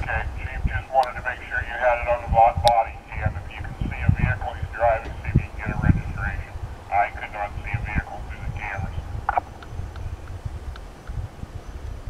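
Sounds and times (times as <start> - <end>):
voice over police radio: 0.0 - 9.4
wind rumble on microphone: 0.0 - 12.0.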